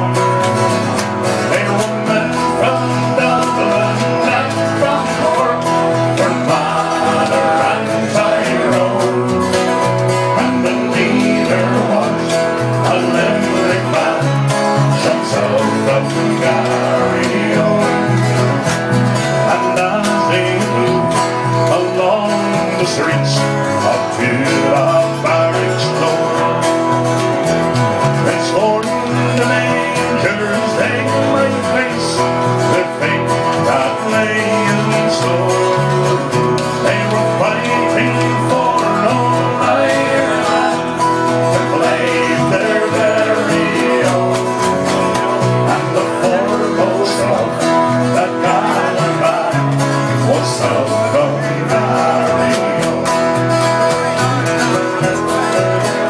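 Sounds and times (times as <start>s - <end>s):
acoustic guitars strumming ballad: 0.0s - 56.0s.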